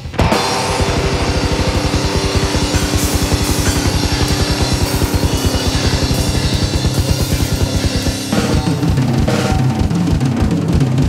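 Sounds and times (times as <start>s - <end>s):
cymbal wash: 0.0s - 10.2s
guitar and bass holding notes: 0.0s - 10.4s
double bass drum strokes: 0.4s - 10.1s.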